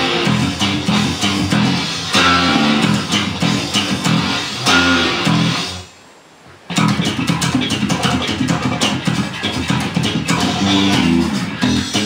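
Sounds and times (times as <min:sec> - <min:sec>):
electric bass guitar plucked notes: 0:00.0 - 0:05.9, 0:06.7 - 0:12.0.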